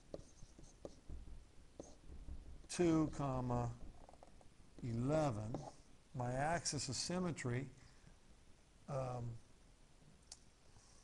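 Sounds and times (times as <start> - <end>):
stylus scratching on writing surface: 0.0 - 2.2, 2.9 - 5.9.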